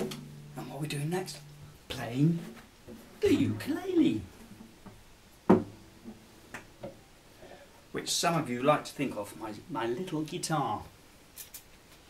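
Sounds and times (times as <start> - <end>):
guitar knocking on wooden table: 4.8 - 7.0.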